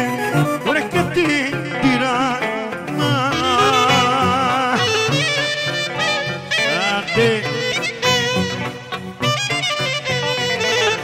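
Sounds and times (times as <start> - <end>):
clarinet playing sliding phrases: 0.0 - 2.4, 3.0 - 11.0
folk dance band playing: 0.0 - 11.0.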